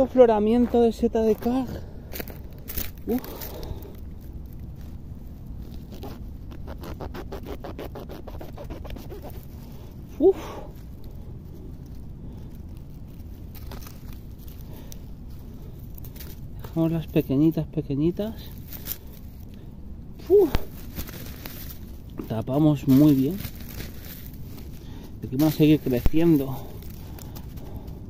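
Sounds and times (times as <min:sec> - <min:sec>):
man exhaling: 0:10.2 - 0:10.8.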